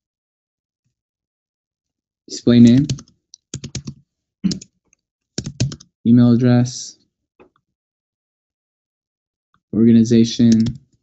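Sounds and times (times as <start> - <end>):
typing on a computer keyboard: 2.6 - 4.7, 5.4 - 5.9, 10.5 - 10.8.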